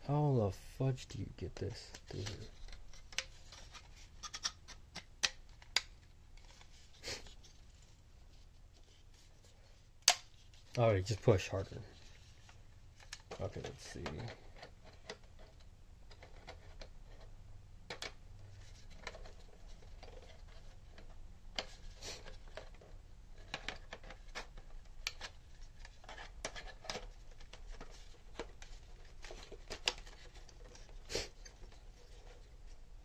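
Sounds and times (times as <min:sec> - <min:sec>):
plastic parts clicking and tapping: 0:13.0 - 0:32.4.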